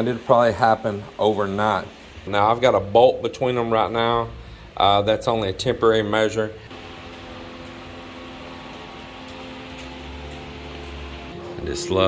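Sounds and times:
machine humming: 0:03.5 - 0:12.0.

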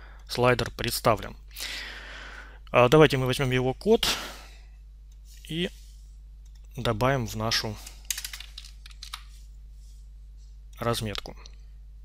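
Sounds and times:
computer keyboard keys clicking: 0:08.1 - 0:09.2.

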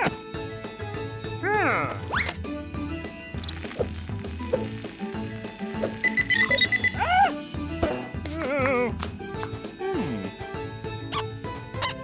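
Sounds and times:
cartoon background music: 0:00.0 - 0:12.0
short high electronic beeps: 0:05.8 - 0:07.0.

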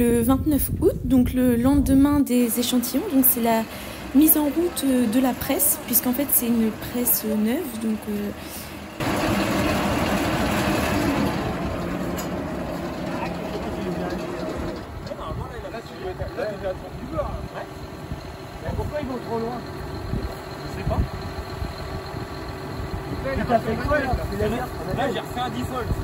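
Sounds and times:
baler mechanism running: 0:00.0 - 0:26.0
tractor idling: 0:00.0 - 0:26.0
men talking: 0:12.9 - 0:21.5, 0:23.0 - 0:26.0.

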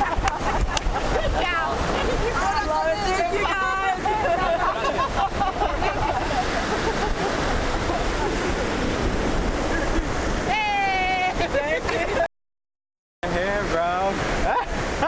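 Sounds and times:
surf: 0:00.0 - 0:12.3, 0:13.2 - 0:15.0
wind on microphone: 0:00.0 - 0:12.3
people calling out: 0:01.4 - 0:05.1, 0:10.4 - 0:11.7.

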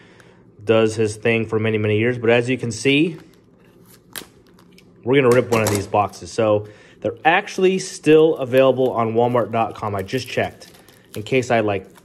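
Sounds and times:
handling shrink-wrapped box: 0:08.1 - 0:12.0.

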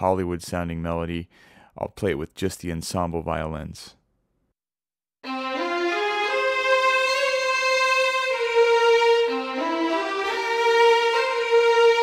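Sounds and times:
violins playing legato melody: 0:05.2 - 0:12.0.

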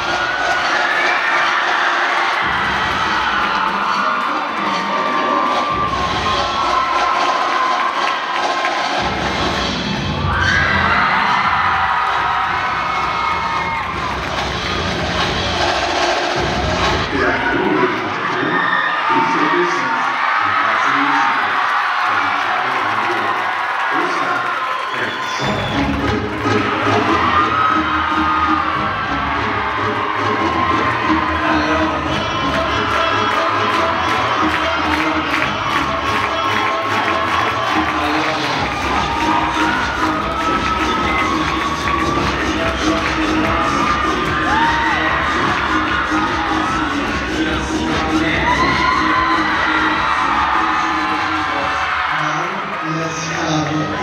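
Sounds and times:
crowd cheering and screaming: 0:00.0 - 0:54.0
music with steady bass beat: 0:08.8 - 0:10.3, 0:10.9 - 0:17.2, 0:25.4 - 0:51.6.

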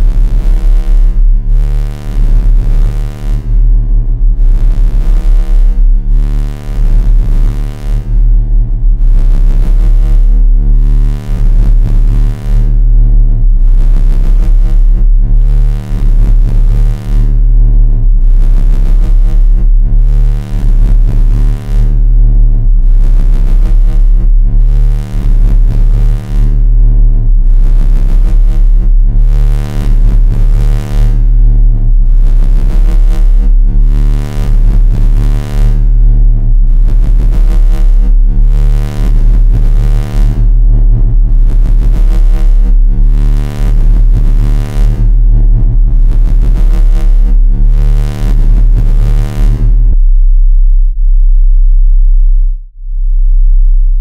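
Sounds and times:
low bass synthesizer tones: 0:00.0 - 0:54.0.

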